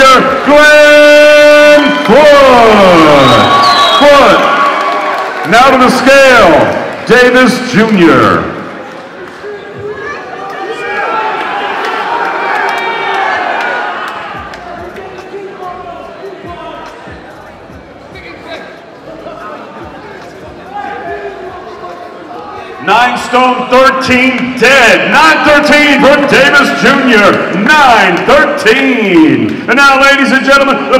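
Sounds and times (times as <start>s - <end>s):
crowd talking and calling out: 0.0s - 30.9s.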